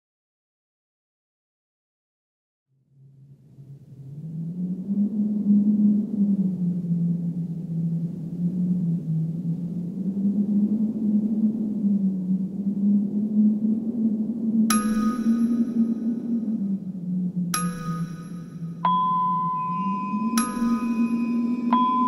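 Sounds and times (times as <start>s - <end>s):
low dark horror drone: 2.8s - 22.0s.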